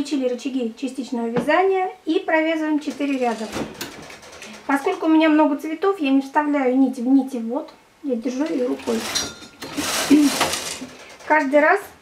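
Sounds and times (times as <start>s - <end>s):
knitting machine carriage rattling: 2.9s - 5.2s, 8.4s - 11.6s.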